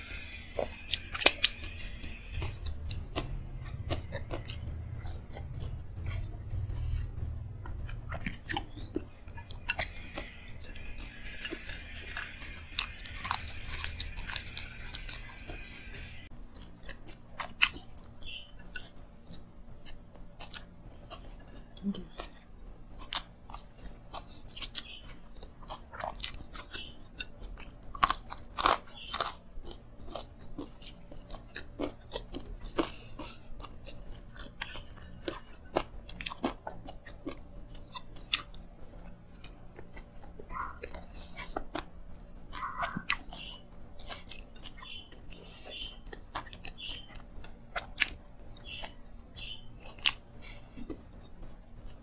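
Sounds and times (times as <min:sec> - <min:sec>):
food crunching: 0:00.0 - 0:52.0
person chewing food: 0:00.0 - 0:52.0.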